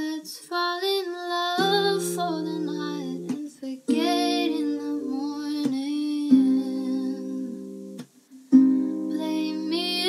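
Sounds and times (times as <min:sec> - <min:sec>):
acoustic guitar chord ringing: 0:06.3 - 0:10.0.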